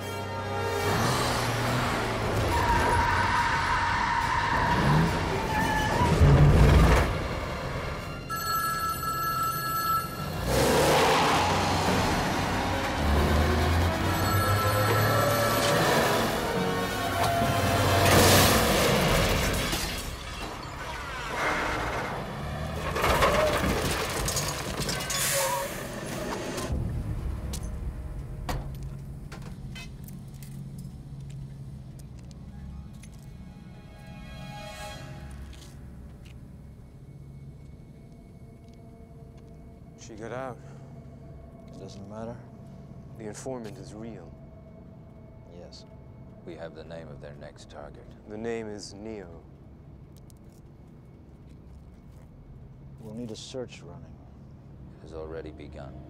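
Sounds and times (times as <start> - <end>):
truck engine: 0.2 - 8.3, 10.2 - 31.7
truck crash: 0.8 - 8.1, 10.7 - 29.5
payphone ringing: 8.3 - 10.4
tense orchestral music: 11.5 - 19.8, 32.5 - 48.1
metal breaking: 17.9 - 25.8
glass shattering: 18.0 - 21.2, 22.8 - 25.7.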